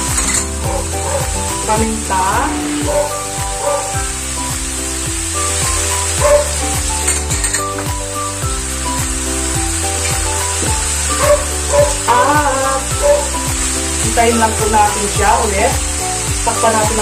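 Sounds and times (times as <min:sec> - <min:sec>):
background music with beat: 0:00.0 - 0:17.0
pork sizzling in a pan: 0:00.0 - 0:17.0.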